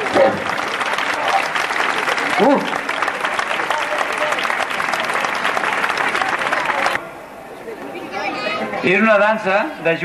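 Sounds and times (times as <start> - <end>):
audience applauding: 0.0 - 7.0.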